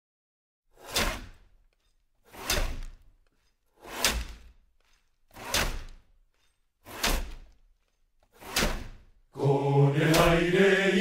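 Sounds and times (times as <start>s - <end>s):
ice saws rasping through ice: 2.2s - 3.0s, 3.8s - 4.5s, 5.3s - 6.0s, 6.8s - 7.5s, 8.3s - 9.0s.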